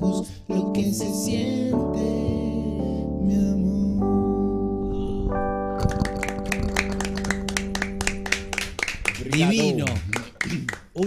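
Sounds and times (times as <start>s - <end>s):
piano chord ringing: 4.0s - 8.8s
people clapping: 5.8s - 11.0s.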